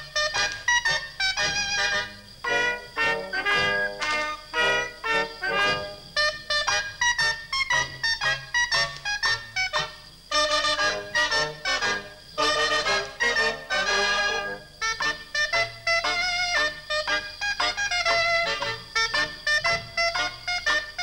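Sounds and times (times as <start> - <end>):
shawms and brass dance band: 0.0 - 21.0.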